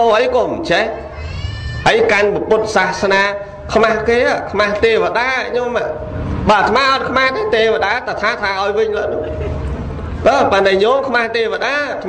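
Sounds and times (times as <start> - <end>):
man preaching: 0.0 - 1.1, 1.8 - 9.6, 10.2 - 12.0.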